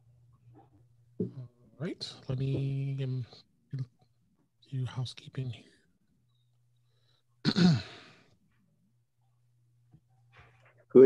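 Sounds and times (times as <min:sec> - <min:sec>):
person sighing: 0:07.5 - 0:08.2.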